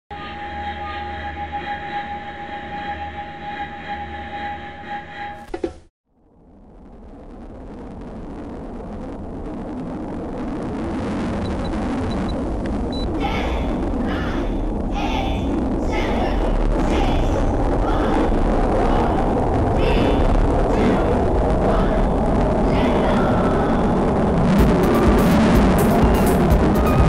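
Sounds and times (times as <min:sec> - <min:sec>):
electronic drone: 0:06.4 - 0:14.9, 0:15.5 - 0:27.0
jet roar: 0:06.8 - 0:27.0.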